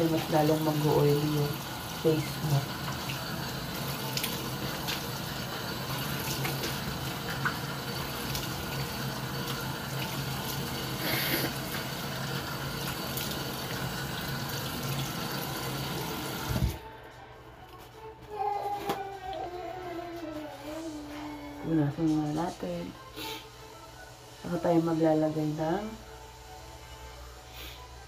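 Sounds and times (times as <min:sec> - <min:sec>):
tap water running into sink: 0:00.0 - 0:16.8.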